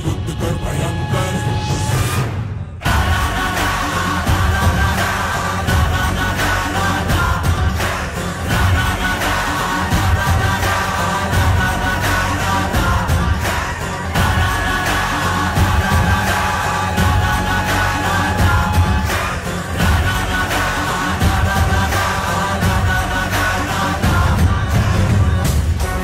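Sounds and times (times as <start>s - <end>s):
song with singing: 0.0s - 26.0s
steady drum beat: 2.8s - 26.0s.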